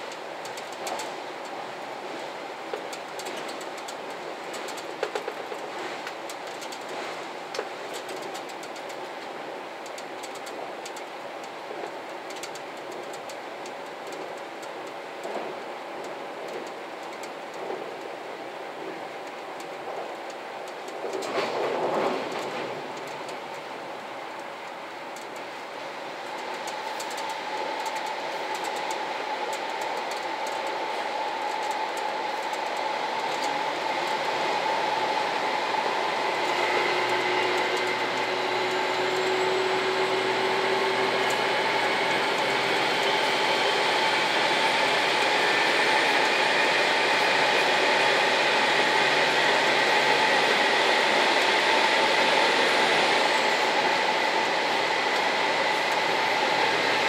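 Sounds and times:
train engine and wheel noise: 0.0s - 57.0s
whining tones: 24.4s - 57.0s.

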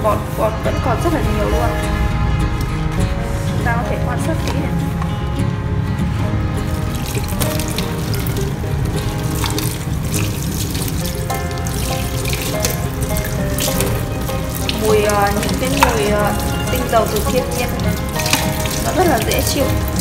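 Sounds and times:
background music: 0.0s - 20.0s
plate rinsed by hand: 6.3s - 20.0s.

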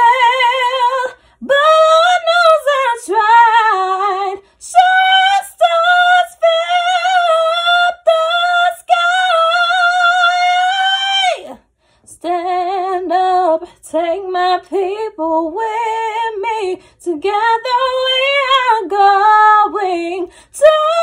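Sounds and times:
woman singing unaccompanied: 0.0s - 21.0s.

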